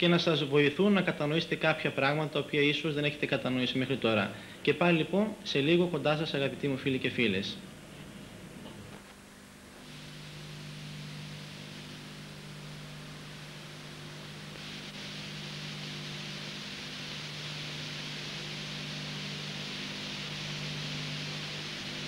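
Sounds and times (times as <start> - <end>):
low steady hum: 0.0 - 22.0
videotape hiss: 0.0 - 22.0.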